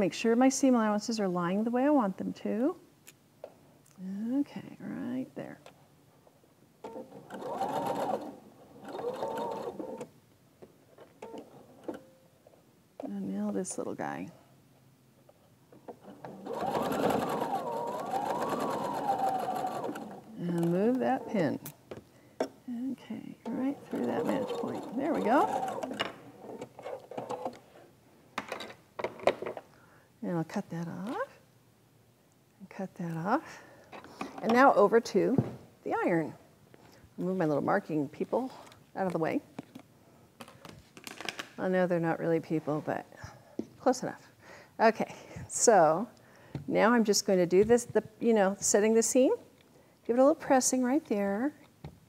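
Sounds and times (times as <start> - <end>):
sewing machine stitching: 6.8 - 10.1, 15.9 - 21.5, 23.4 - 27.6.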